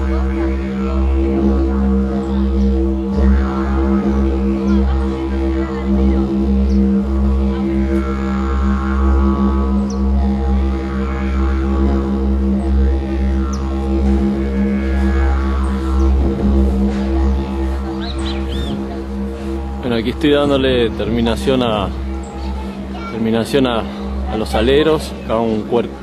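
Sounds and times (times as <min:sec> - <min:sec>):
didgeridoo drone: 0:00.0 - 0:26.0.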